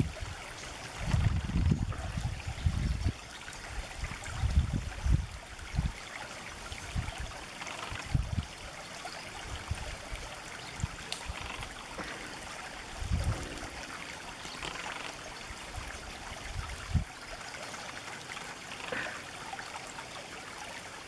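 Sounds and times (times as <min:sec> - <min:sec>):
stream trickling over stones: 0:00.0 - 0:21.0.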